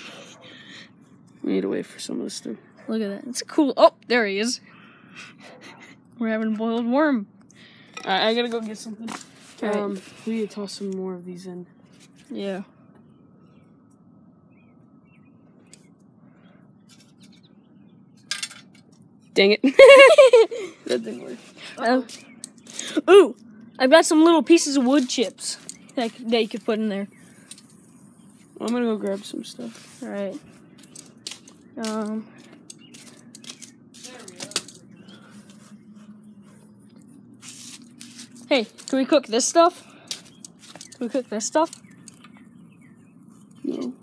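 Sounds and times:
low steady hum: 0.0s - 44.0s
rustling noise: 8.6s - 10.9s, 24.7s - 39.0s
distant bird chirps: 10.0s - 44.0s.

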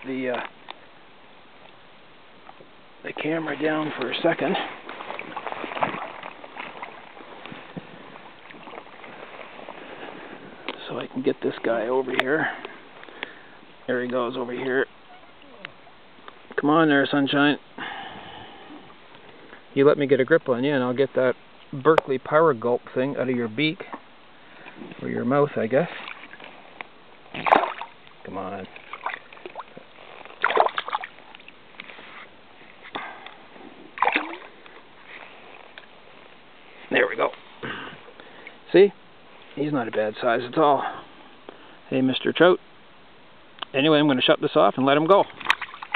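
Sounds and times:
brook running over stones: 2.4s - 17.3s, 23.2s - 40.7s, 43.7s - 45.9s
stream water splashing: 2.4s - 17.5s, 23.4s - 40.8s, 43.7s - 45.9s.

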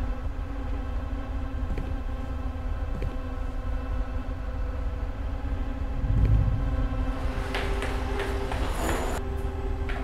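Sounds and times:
low rumbling drone: 0.0s - 9.9s
deep low boom: 6.0s - 7.0s.

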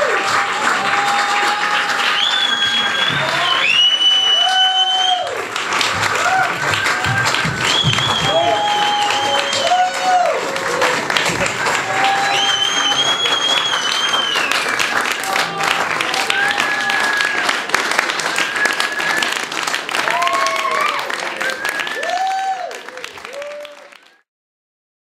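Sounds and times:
audience applauding: 0.0s - 24.3s
people cheering: 0.0s - 24.3s
long high whistle: 2.0s - 5.3s, 7.7s - 9.9s, 12.1s - 14.8s, 18.2s - 19.5s, 20.8s - 22.7s.

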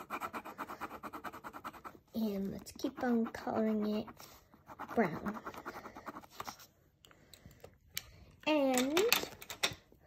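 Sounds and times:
pen scribbling on paper: 0.0s - 6.6s.

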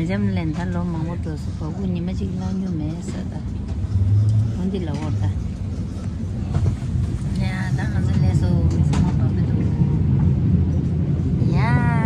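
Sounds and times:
train wheels rumbling: 0.0s - 12.0s.

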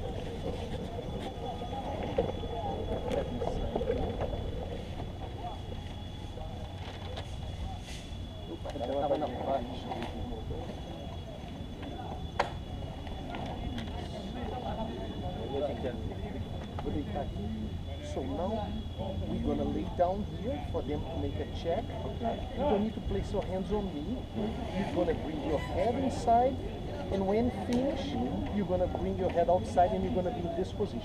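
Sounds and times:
wind rumble on microphone: 0.0s - 7.8s.

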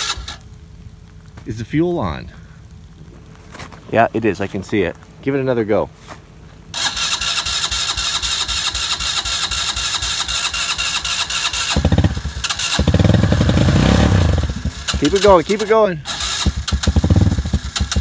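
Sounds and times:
electric starter cranking engine: 0.0s - 0.4s, 6.8s - 18.0s
engine running: 6.7s - 18.0s.

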